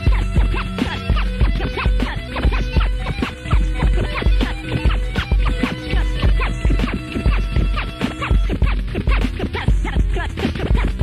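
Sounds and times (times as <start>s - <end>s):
held keyboard notes: 0.0s - 9.2s
drum machine beat with bass: 0.0s - 11.0s
turntable scratching: 0.0s - 11.0s.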